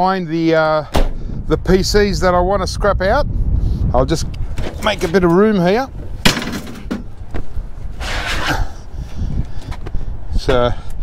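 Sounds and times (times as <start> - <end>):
scraping rush: 8.0 - 8.7.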